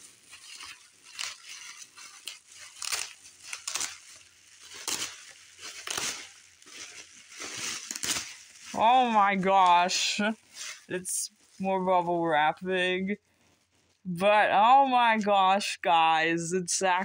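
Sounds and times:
bubble wrap crinkling: 0.0s - 14.1s.

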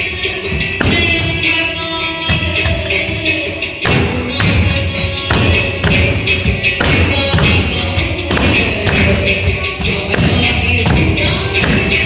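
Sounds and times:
classical dance music: 0.0s - 12.0s.

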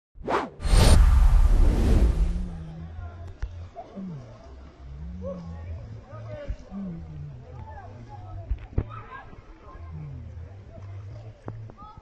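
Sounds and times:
whoosh sound effects: 0.2s - 2.6s
low rumble: 0.6s - 3.6s.

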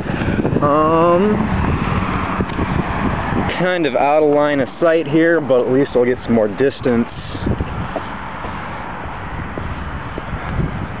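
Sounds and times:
street noise: 0.0s - 11.0s
low thumps from walking: 7.5s - 11.0s.

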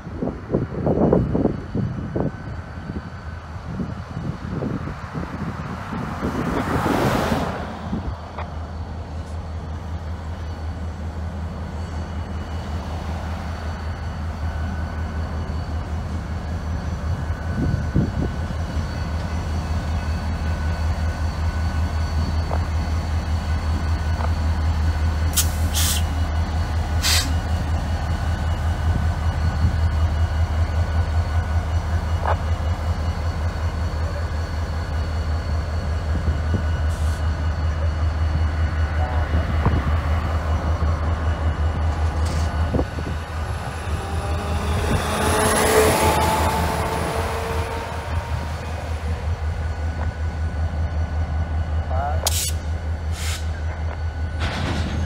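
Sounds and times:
diesel locomotive engine rumbling: 0.0s - 55.0s.

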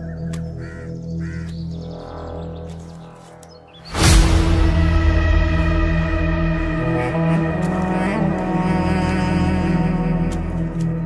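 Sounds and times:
crow cawing: 0.0s - 1.8s
low sustained music: 0.0s - 11.0s.

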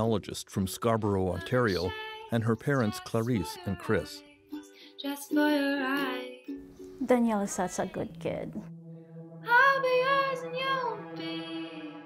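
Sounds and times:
young woman singing: 1.4s - 6.6s, 9.4s - 12.0s.

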